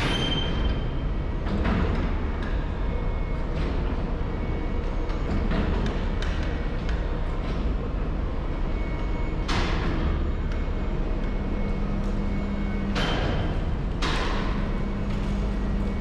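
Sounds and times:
low machinery rumble: 0.0 - 16.0
motor hum: 0.7 - 16.0.

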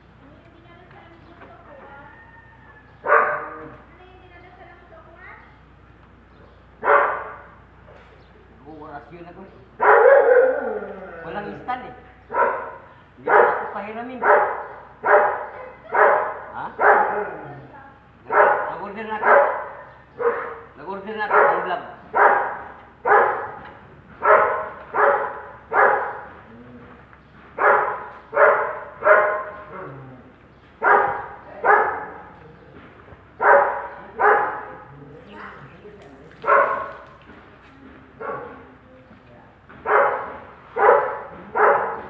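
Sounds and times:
dog barking: 3.0 - 3.8, 6.8 - 7.6, 9.8 - 10.8, 12.3 - 17.7, 18.3 - 26.3, 27.6 - 29.9, 30.8 - 32.6, 33.4 - 35.7, 36.3 - 37.2, 38.2 - 38.8, 39.8 - 42.0.

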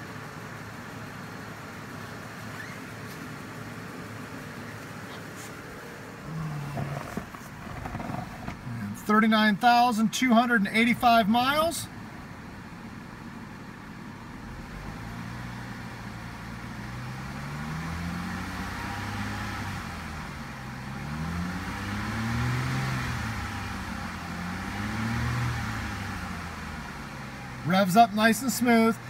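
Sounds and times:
car engine revving from idle: 0.0 - 9.2, 12.0 - 29.0.

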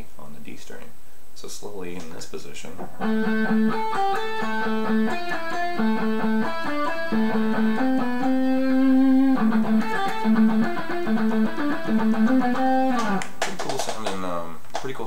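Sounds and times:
electric guitar playing scales: 2.9 - 13.3.

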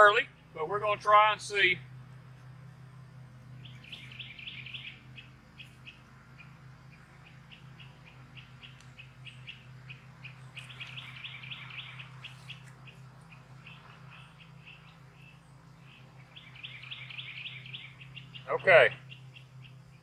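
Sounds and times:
steady low hum: 0.0 - 20.0
small bird chirping: 1.8 - 20.0.

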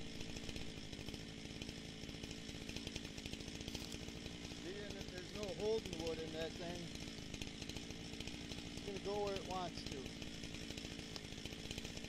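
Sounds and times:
chainsaw idling: 0.0 - 12.0.

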